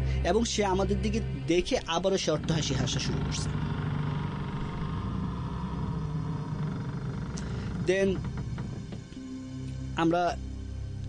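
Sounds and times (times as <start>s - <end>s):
person telling a story: 0.0s - 3.6s, 7.8s - 8.3s, 10.0s - 10.4s
low rumbling drone: 0.0s - 11.0s.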